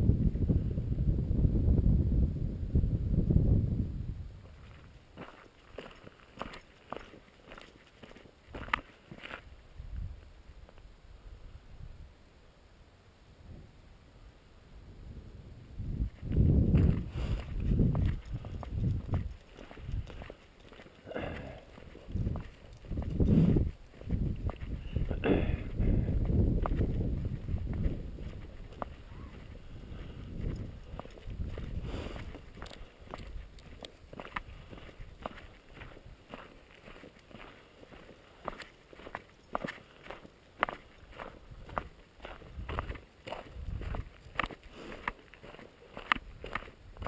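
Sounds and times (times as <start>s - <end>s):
footsteps crunching on gravel: 4.4s - 9.5s, 16.0s - 47.0s.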